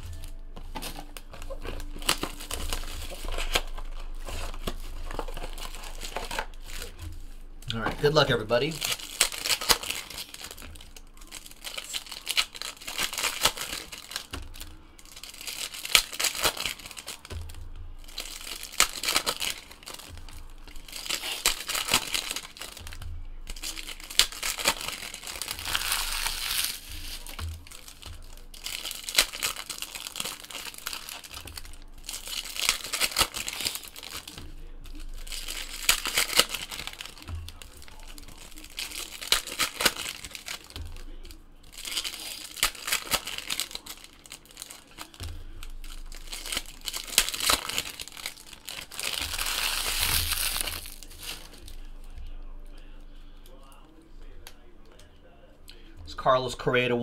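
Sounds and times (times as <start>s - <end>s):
wrappers crinkling and tearing: 0.0s - 57.0s.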